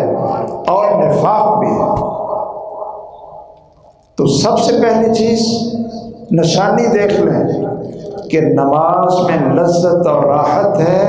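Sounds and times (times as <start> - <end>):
man's voice holding one pitch: 0.0 - 2.2, 4.2 - 11.0.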